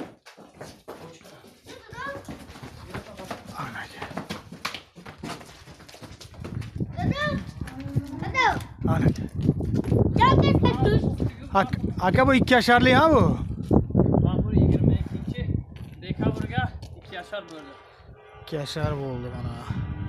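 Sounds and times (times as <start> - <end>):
hooves on concrete: 0.0 - 17.8.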